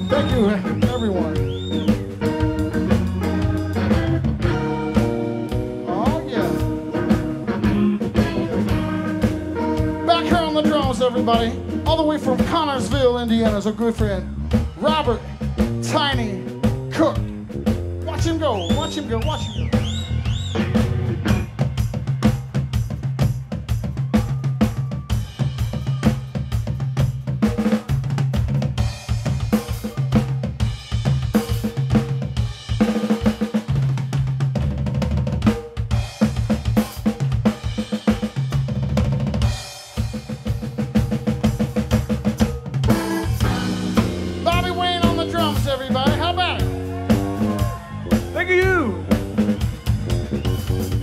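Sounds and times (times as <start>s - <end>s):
electric guitar: 0.0s - 12.4s, 42.9s - 51.0s
bass guitar riff: 0.0s - 22.7s, 42.2s - 51.0s
drum kit solo: 0.0s - 51.0s.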